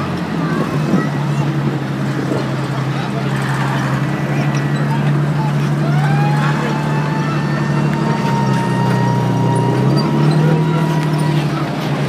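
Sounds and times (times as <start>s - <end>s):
military vehicle engines driving past: 0.0s - 12.0s.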